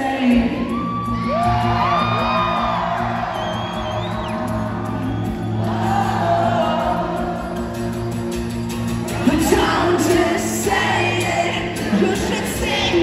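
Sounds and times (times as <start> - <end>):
acoustic guitar through sound system: 0.0 - 13.0
fans cheering: 0.0 - 13.0.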